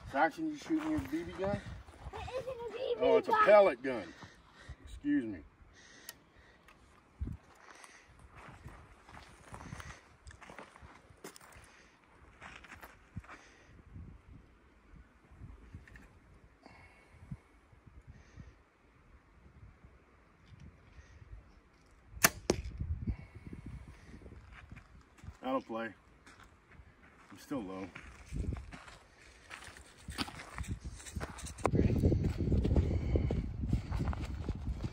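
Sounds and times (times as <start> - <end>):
bow string release snap: 22.2 - 22.8.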